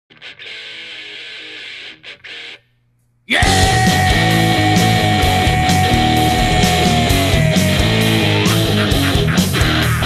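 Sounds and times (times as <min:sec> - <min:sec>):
electric guitar chord: 0:03.4 - 0:09.2.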